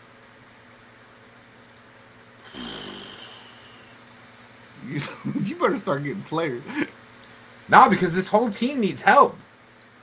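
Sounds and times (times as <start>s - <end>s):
man's drawn-out groan: 2.5s - 3.7s.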